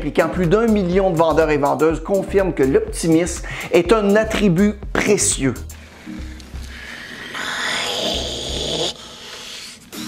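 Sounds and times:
music with low pulsing beat: 0:00.0 - 0:06.9.

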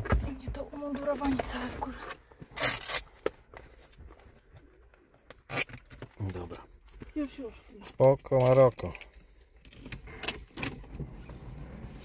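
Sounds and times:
hook-and-loop straps ripping open: 0:02.5 - 0:03.4, 0:05.3 - 0:06.5.

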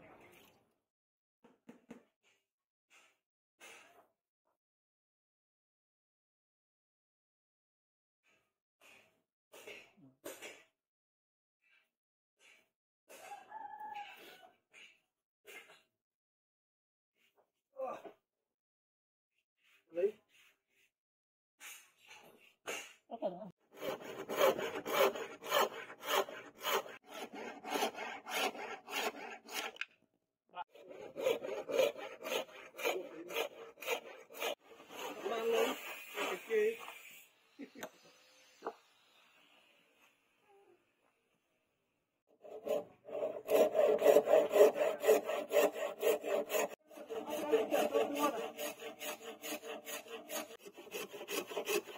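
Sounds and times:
hand saw cutting wood: 0:23.7 - 0:29.9, 0:30.6 - 0:40.1, 0:42.4 - 0:51.9.

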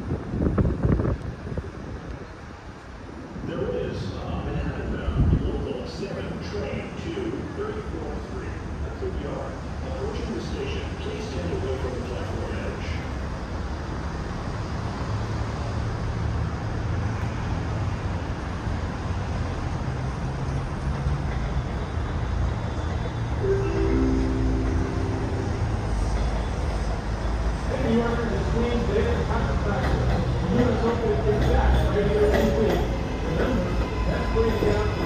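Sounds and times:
subway train rumbling on steel: 0:00.0 - 0:35.0
steady chord-like tone: 0:23.4 - 0:26.6.

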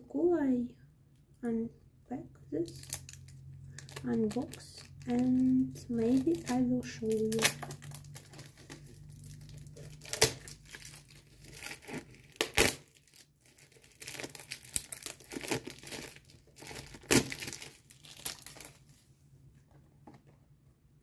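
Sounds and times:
plastic wrap tearing and crinkling: 0:02.6 - 0:19.0.

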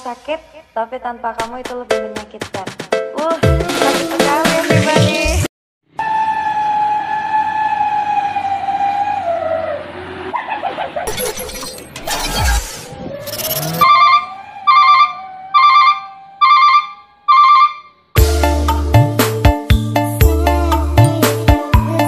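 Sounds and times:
music with a beat: 0:01.4 - 0:05.5, 0:18.2 - 0:22.0
falling electronic tone: 0:11.1 - 0:17.9.

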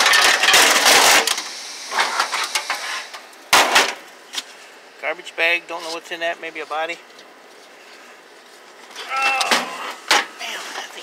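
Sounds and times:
person saying oh: 0:09.0 - 0:09.9.

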